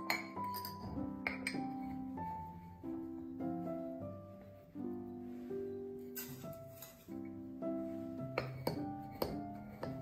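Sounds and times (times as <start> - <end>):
metal cup clinking on glass jar: 0.0 - 1.7
gentle instrumental music: 0.0 - 10.0.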